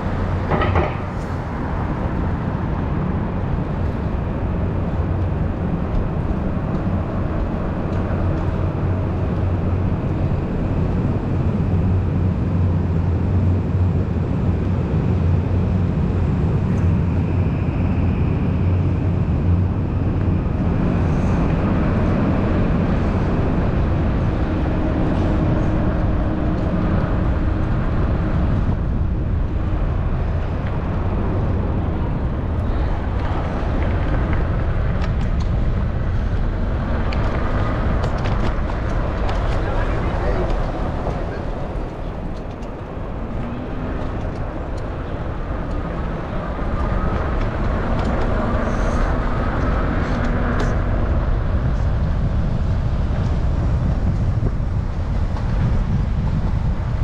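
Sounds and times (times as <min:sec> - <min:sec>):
traffic: 0:00.0 - 0:57.0
wind and road noise: 0:00.0 - 0:57.0.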